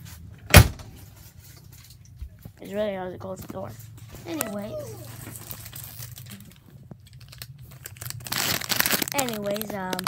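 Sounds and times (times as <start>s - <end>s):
snack wrapper crinkling: 4.3s - 10.0s.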